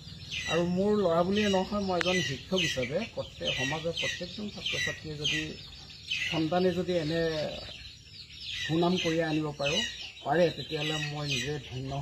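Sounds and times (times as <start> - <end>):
chickens calling: 0.0 - 12.0
man speaking: 0.5 - 5.6, 6.3 - 7.7, 8.7 - 12.0.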